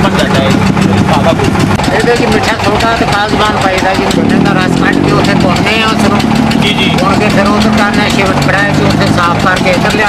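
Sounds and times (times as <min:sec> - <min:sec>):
man talking: 0:00.0 - 0:01.5
engine running with low hum: 0:00.0 - 0:10.0.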